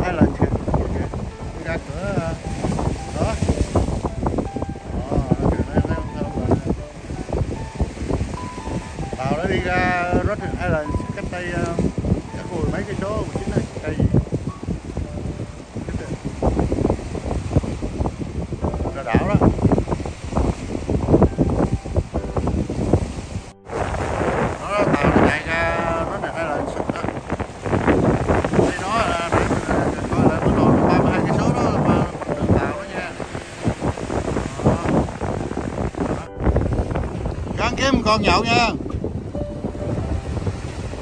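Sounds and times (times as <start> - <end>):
waves washing against rocks: 0.0 - 41.0
wind buffeting microphone: 0.0 - 41.0.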